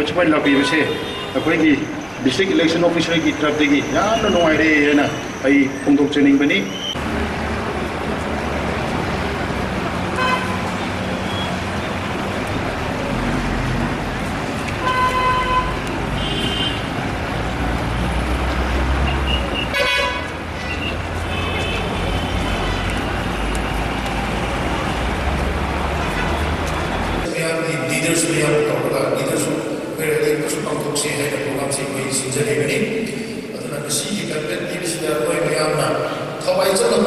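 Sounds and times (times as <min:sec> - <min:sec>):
road traffic rumble: 0:00.0 - 0:37.0
vehicle horn toots: 0:00.5 - 0:01.6, 0:10.1 - 0:11.6, 0:14.8 - 0:16.9, 0:19.0 - 0:23.0.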